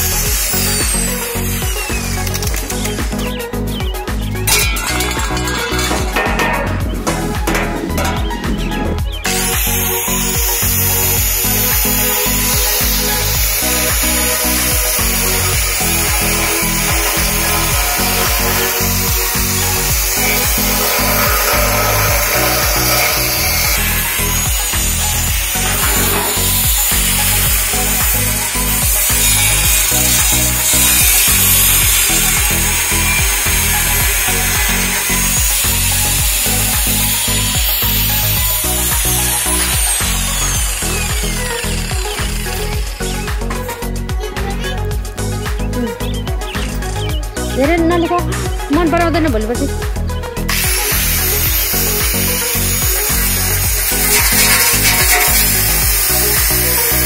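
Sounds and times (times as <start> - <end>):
angle grinder cutting metal: 0.0 - 47.2, 49.6 - 57.0.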